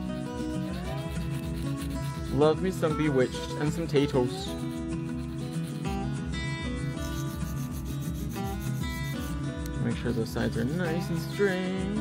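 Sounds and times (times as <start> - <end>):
background music: 0.0 - 12.0
nail file rubbing: 0.1 - 6.1, 6.9 - 9.4.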